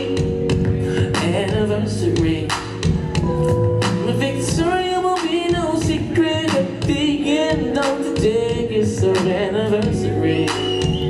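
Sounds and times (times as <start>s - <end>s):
band playing bass and drums: 0.0s - 11.0s
person singing wordless vocal: 0.0s - 11.0s.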